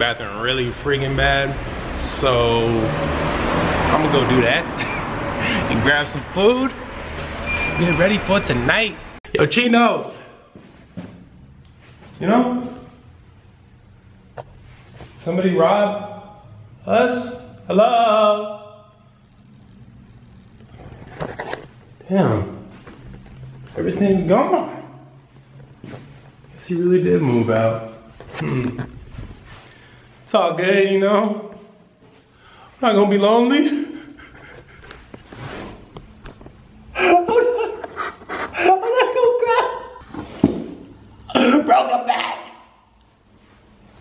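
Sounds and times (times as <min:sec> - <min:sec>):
man laughing loudly: 0:33.6 - 0:35.3, 0:37.0 - 0:40.0.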